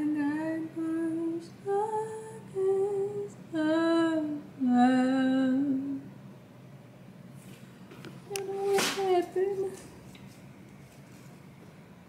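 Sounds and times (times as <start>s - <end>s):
woman singing held notes: 8.3s - 9.9s.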